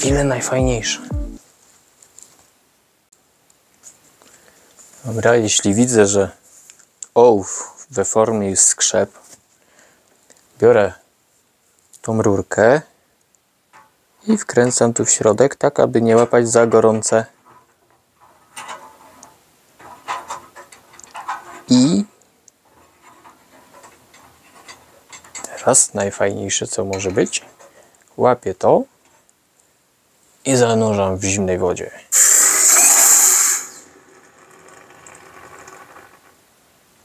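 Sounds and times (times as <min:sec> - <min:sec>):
metal tube scraping creaks: 0:16.7 - 0:21.8, 0:22.7 - 0:25.7, 0:32.2 - 0:36.4
hot metal hissing in water: 0:32.1 - 0:34.5.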